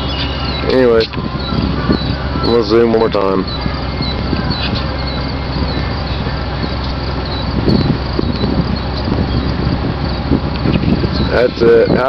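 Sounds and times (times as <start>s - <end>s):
faint high chirps: 0.0s - 12.0s
low rumble and hiss: 0.0s - 12.0s.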